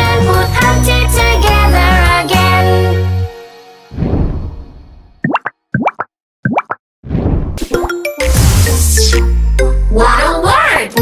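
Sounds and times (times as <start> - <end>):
quick rising bloops: 5.2 - 7.9.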